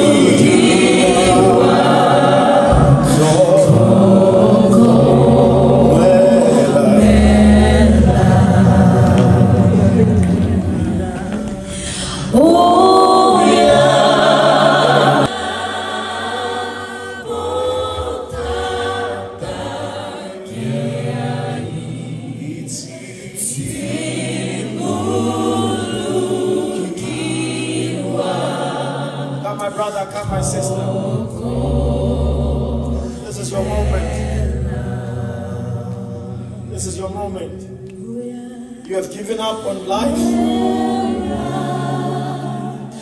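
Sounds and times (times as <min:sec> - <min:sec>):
group singing in harmony: 0:00.0 - 0:43.0.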